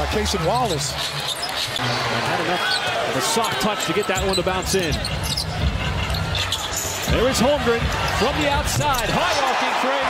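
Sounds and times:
arena crowd hubbub: 0.0 - 10.0.

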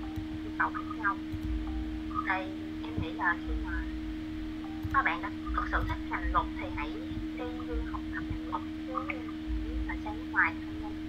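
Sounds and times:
electrical hum: 0.0 - 11.0
low microphone rumbles: 0.0 - 11.0
person speaking over online call: 2.1 - 3.9, 5.0 - 10.6.

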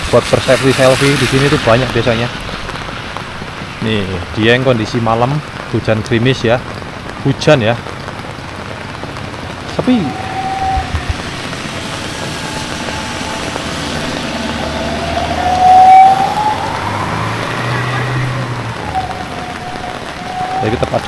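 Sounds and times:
rain falling on wet street: 0.0 - 21.0
whining tone gliding in pitch: 9.7 - 21.0.

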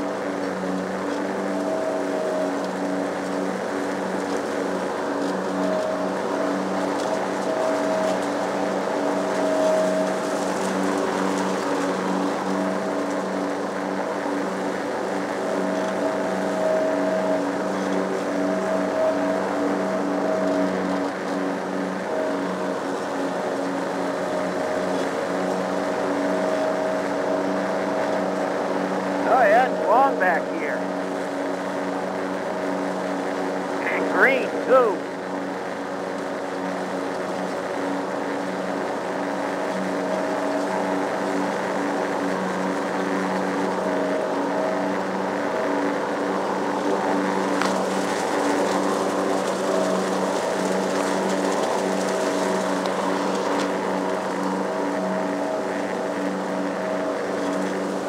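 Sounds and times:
lawn mower engine running: 0.0 - 58.0.

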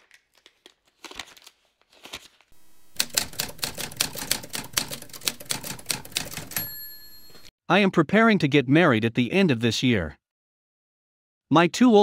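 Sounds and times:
typewriter keys clacking: 3.0 - 7.5
typewriter bell ding: 4.3 - 7.5.

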